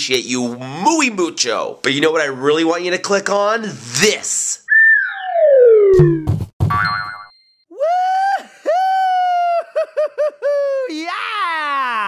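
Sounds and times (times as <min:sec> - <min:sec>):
boing-like blips: 0:04.7 - 0:07.1.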